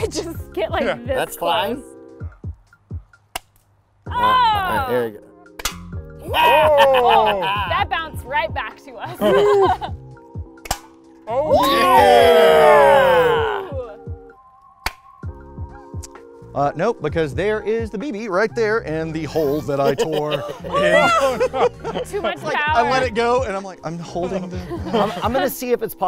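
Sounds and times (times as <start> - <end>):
background music with deep beats: 0.0 - 26.0
slingshot snap: 5.6 - 5.9, 10.6 - 11.0, 14.8 - 15.1.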